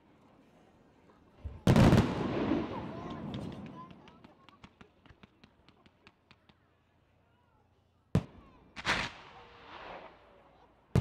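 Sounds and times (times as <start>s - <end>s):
firework crackling pops: 1.7s - 4.9s, 8.2s - 10.3s.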